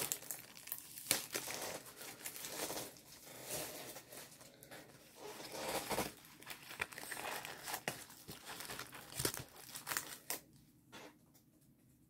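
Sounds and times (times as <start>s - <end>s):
plastic packaging crinkling: 0.0s - 10.6s.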